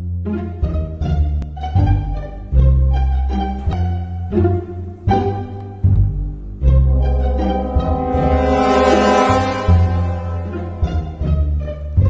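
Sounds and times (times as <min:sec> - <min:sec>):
background music with plucked bass: 0:00.0 - 0:11.4
low horn blast: 0:06.6 - 0:11.6.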